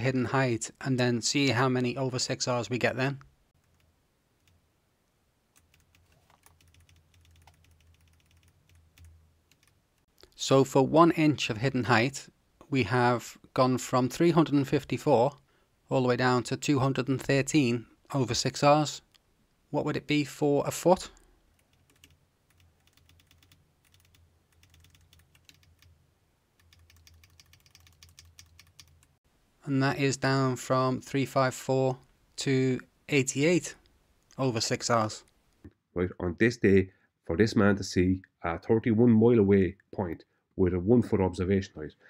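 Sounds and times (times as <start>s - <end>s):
keyboard keystrokes: 5.6s - 9.7s
computer keyboard keystrokes: 5.6s - 9.8s, 21.6s - 25.9s, 26.6s - 29.0s.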